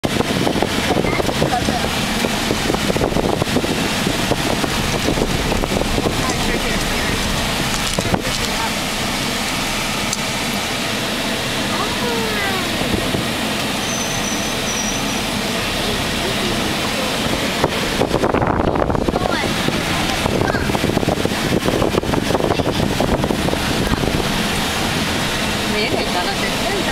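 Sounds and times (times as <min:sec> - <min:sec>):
road and wind noise in car: 0:00.0 - 0:26.9.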